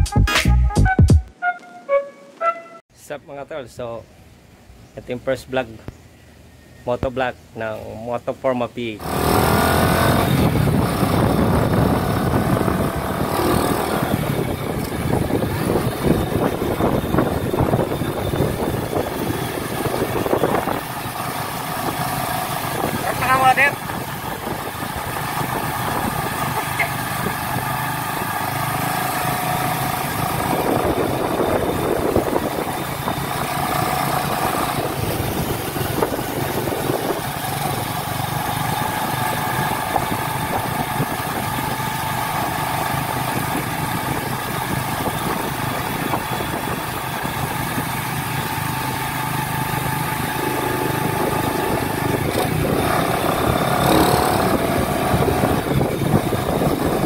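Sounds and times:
road noise: 0:01.3 - 0:57.0
motorcycle engine running: 0:09.0 - 0:57.0.

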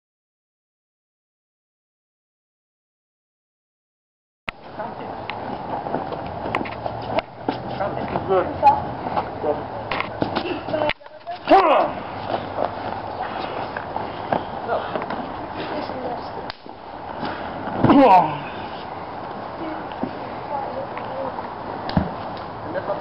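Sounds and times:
outdoor background noise: 0:04.5 - 0:23.0.

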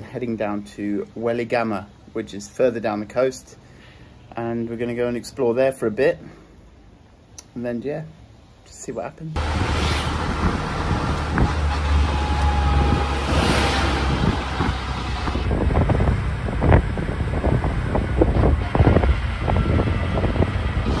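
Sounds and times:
low rumble: 0:09.4 - 0:21.0
road noise inside moving vehicle: 0:09.4 - 0:21.0
wind buffeting microphone: 0:09.4 - 0:21.0.

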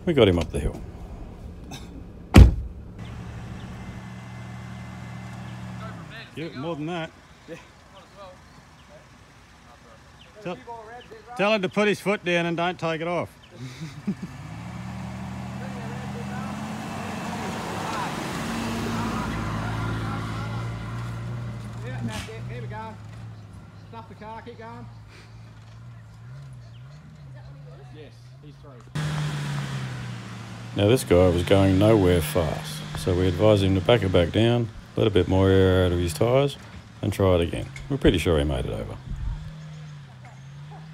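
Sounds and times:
engine running at low revs: 0:00.0 - 0:10.4, 0:13.4 - 0:40.9
loud sharp thump: 0:02.3 - 0:02.8.

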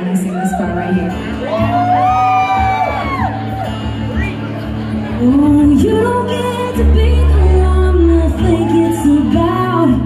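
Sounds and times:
audience whooping: 0:00.3 - 0:04.5
acoustic guitar strumming: 0:00.9 - 0:10.0.

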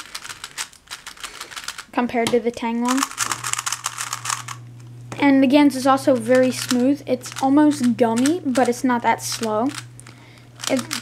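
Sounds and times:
plastic puzzle cube clicking: 0:00.0 - 0:01.9, 0:02.9 - 0:04.6, 0:08.2 - 0:08.7, 0:10.6 - 0:11.0.

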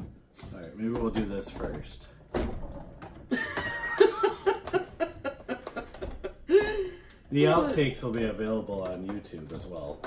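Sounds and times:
person laughing: 0:03.3 - 0:07.8.

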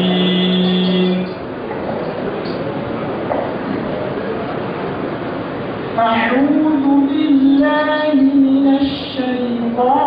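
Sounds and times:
hall background noise: 0:00.0 - 0:10.0.

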